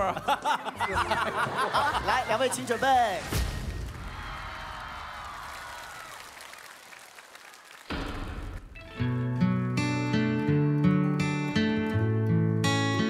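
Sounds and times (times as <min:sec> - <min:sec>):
audience applause: 0:03.8 - 0:08.6
guitar playing held chords: 0:08.8 - 0:13.0.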